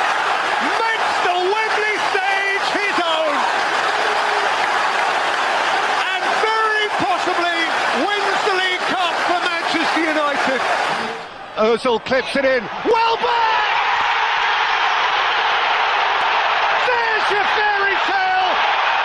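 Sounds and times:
stadium crowd cheering: 0:00.0 - 0:19.0
man shouting excitedly: 0:00.6 - 0:03.5, 0:12.8 - 0:13.8, 0:16.8 - 0:18.6.

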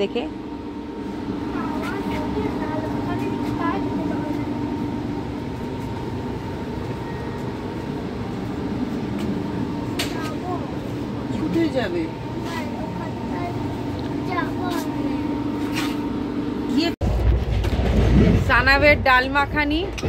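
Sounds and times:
faint steady whine: 0:00.0 - 0:17.0
mechanical hum in train coach: 0:00.0 - 0:20.0.

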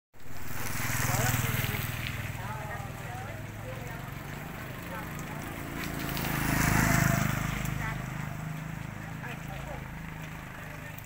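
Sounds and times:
small engine idling: 0:00.4 - 0:11.0
people's voices: 0:00.5 - 0:11.0.

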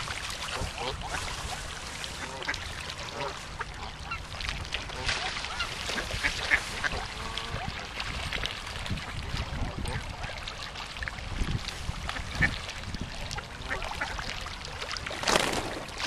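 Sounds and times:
duck splashing on water: 0:00.0 - 0:16.0
ducks quacking: 0:00.5 - 0:01.6, 0:02.2 - 0:04.3, 0:04.9 - 0:07.8.

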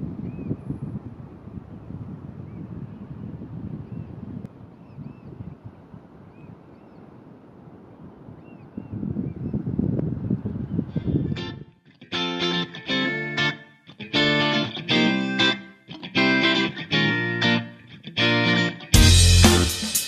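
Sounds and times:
wind buffeting microphone: 0:00.0 - 0:11.6
birds chirping: 0:02.5 - 0:05.6.

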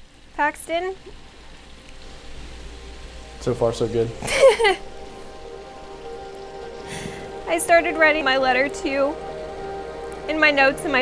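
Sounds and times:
soft background hiss: 0:00.0 - 0:11.0.

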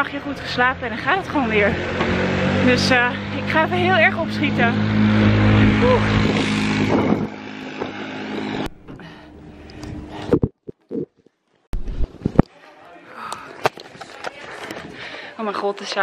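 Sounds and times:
wind on microphone: 0:04.8 - 0:10.6.

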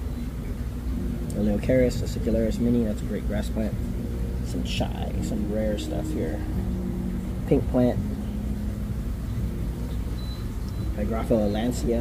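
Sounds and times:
faint constant tone: 0:00.0 - 0:12.0
low machinery hum: 0:00.0 - 0:12.0.

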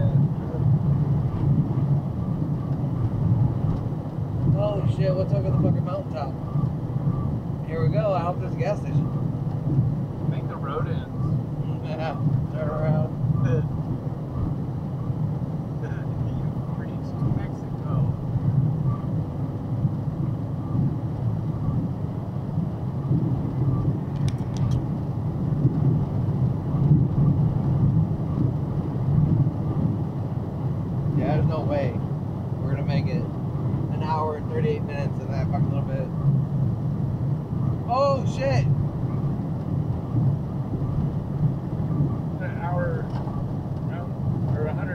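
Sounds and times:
truck engine and tyres droning: 0:00.0 - 0:44.9.

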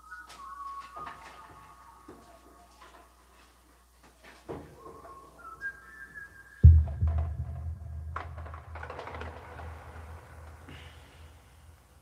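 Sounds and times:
low rumble: 0:06.6 - 0:09.7
loud thump: 0:06.6 - 0:10.6.

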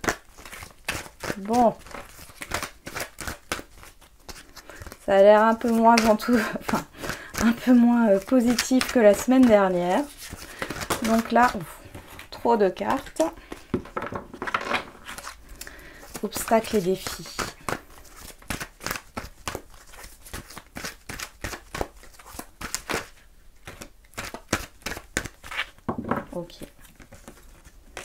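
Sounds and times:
cards being shuffled: 0:00.0 - 0:28.0.

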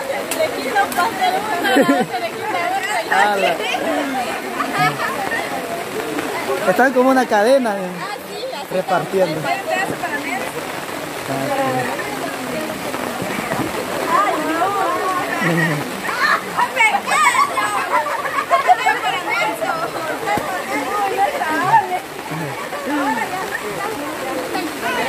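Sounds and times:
people chatting and laughing: 0:00.0 - 0:25.0.

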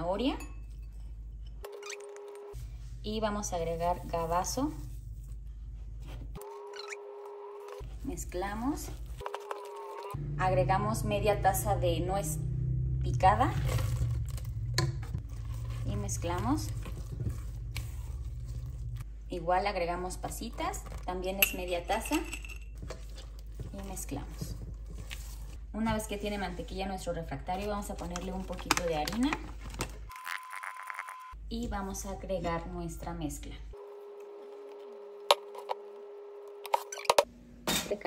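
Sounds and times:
steady low hum: 0:10.1 - 0:28.6
spatula scraping mixing bowl: 0:13.2 - 0:29.8.

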